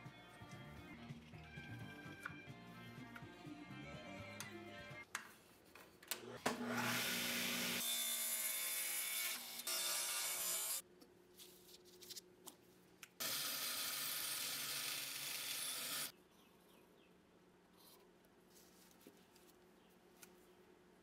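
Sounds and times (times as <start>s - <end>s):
table saw cutting wood: 6.4s - 10.8s, 13.2s - 16.1s.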